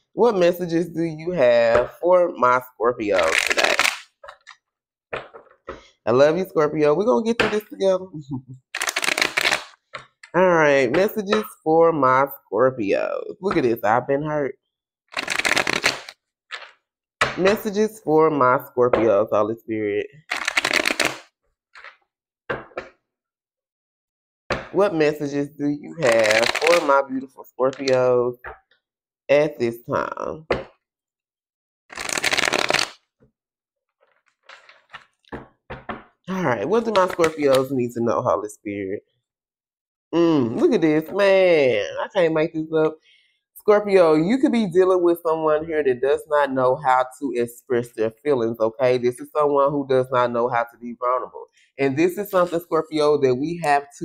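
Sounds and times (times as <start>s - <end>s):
cards being shuffled: 3.2s - 4.6s, 8.8s - 10.3s, 15.1s - 16.8s, 20.3s - 22.0s, 26.0s - 26.9s, 31.9s - 33.0s, 34.0s - 35.3s, 36.8s - 37.6s.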